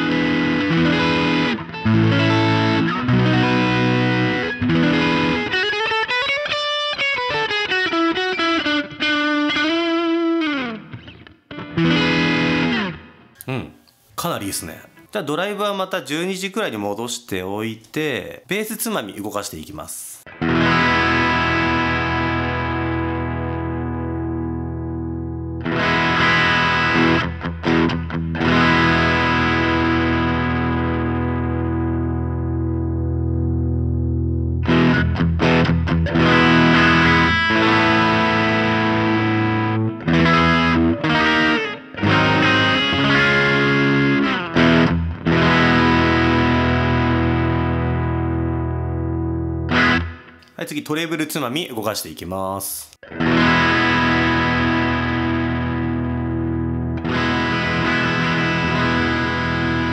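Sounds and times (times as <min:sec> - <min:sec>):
overdriven electric guitar: 0:00.0 - 0:13.6, 0:20.2 - 0:50.6, 0:53.0 - 0:59.9.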